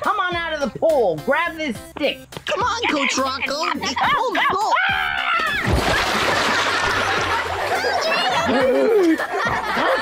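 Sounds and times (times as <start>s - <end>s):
big splash into pool: 5.4s - 7.5s
water spraying and churning: 5.6s - 7.7s.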